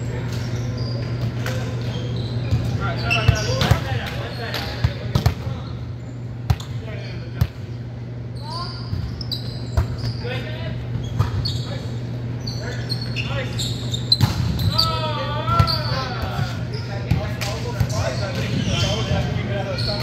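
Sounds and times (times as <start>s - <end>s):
steady low hum: 0.0s - 20.0s
players calling out: 8.2s - 20.0s.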